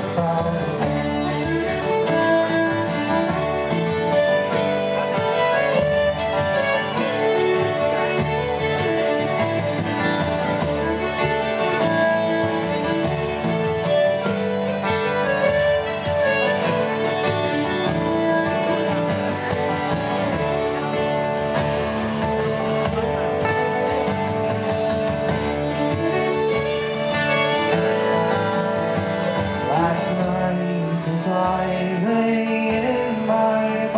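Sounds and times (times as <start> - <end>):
acoustic guitars strummed: 0.0 - 33.9.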